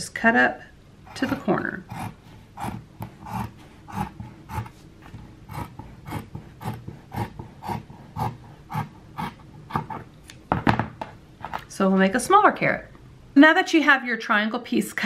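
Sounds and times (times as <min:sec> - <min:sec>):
scissors snipping fabric: 0:01.1 - 0:10.0.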